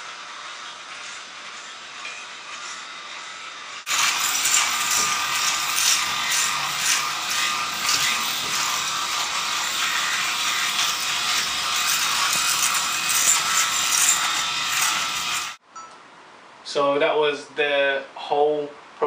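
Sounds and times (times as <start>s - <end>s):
electric shaver buzzing: 0.0s - 15.6s.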